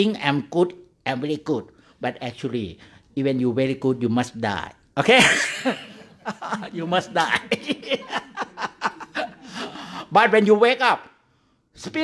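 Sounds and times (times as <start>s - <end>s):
man chuckling: 5.2s - 10.0s.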